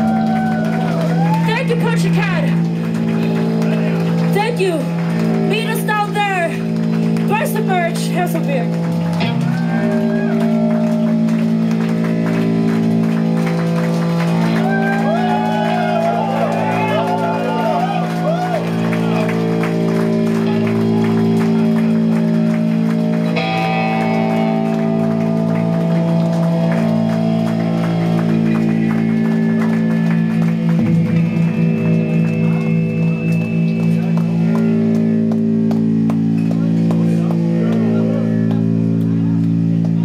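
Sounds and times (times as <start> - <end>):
guitar feedback drone: 0.0 - 40.0.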